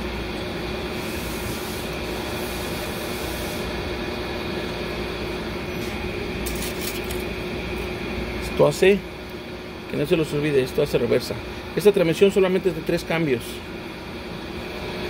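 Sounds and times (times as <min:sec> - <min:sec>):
steady background hum: 0:00.0 - 0:15.0.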